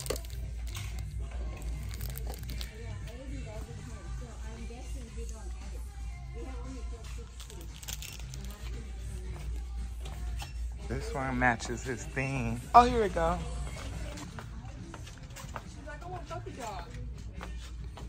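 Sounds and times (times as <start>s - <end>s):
plastic packages crinkling: 0.0s - 2.8s
background music: 0.0s - 18.0s.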